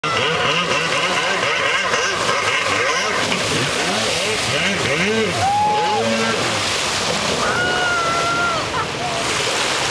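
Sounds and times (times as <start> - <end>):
two-stroke jet ski engine revving: 0.0 - 7.5.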